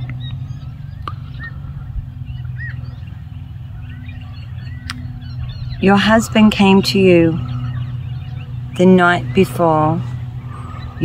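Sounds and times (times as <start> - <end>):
bird chirps: 0.0 - 11.0
low rumble: 0.0 - 11.0.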